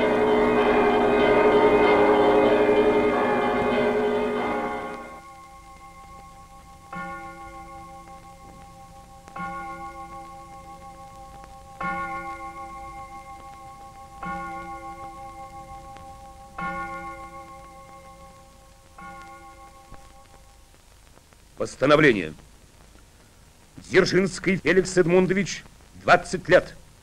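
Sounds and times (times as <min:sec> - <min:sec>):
bell tolling: 0:00.0 - 0:18.4.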